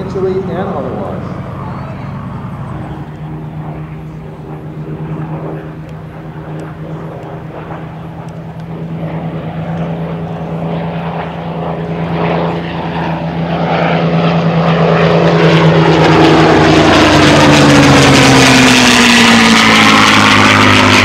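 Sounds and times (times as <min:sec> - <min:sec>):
propeller plane engines droning: 0:00.0 - 0:21.0.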